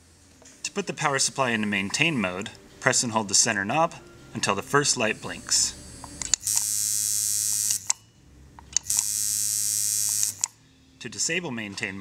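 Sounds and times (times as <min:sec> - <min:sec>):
tattoo machine buzzing: 0:06.4 - 0:08.0, 0:08.8 - 0:10.6
small clicks: 0:10.0 - 0:10.6.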